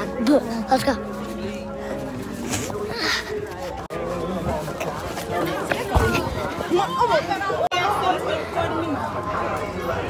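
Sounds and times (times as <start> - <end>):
young people chattering: 0.0 - 10.0.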